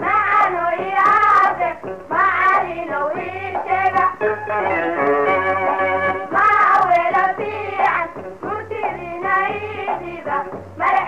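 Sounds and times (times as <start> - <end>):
sung melody over steady beat: 0.8 - 10.8.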